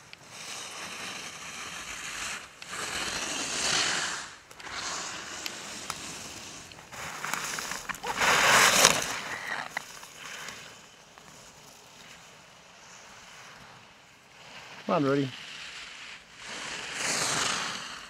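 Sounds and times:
skis scraping on snow: 0.0 - 18.0.

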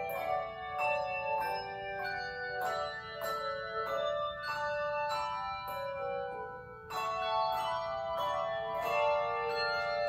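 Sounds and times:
handbells ringing chords: 0.0 - 10.0.

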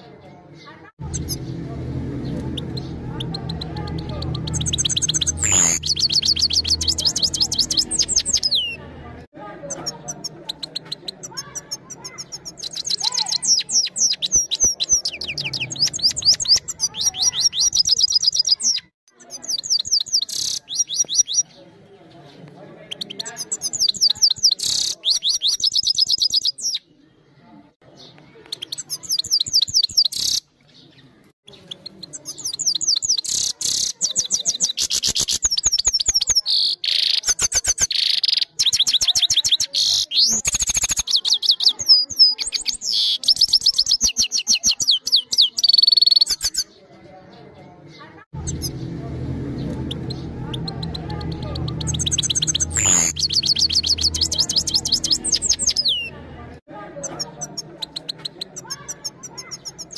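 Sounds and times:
goldfinch singing trills: 2.2 - 8.8, 9.7 - 21.6, 49.6 - 56.1.

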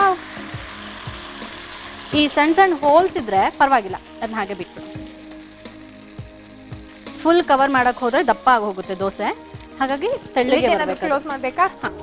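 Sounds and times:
food sizzling in a pan: 0.0 - 12.0
soft background music: 0.0 - 12.0.

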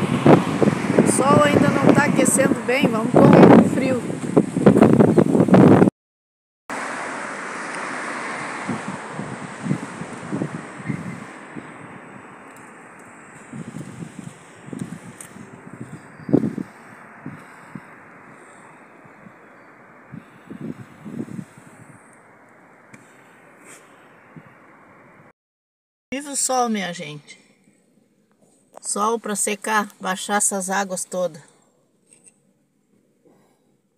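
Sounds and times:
wind noise on microphone: 0.0 - 5.9, 8.3 - 22.2, 24.2 - 25.3.

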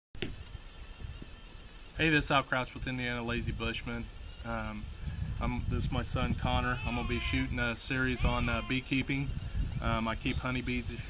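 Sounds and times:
insect chirring: 0.2 - 11.0.

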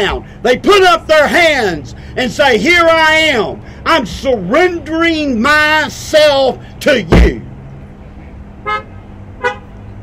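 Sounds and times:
car horn toots: 8.6 - 9.8.

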